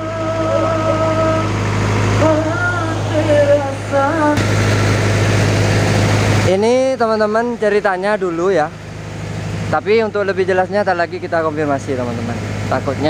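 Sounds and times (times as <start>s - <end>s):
sung melody: 0.0s - 7.3s
diesel generator humming: 0.0s - 13.0s.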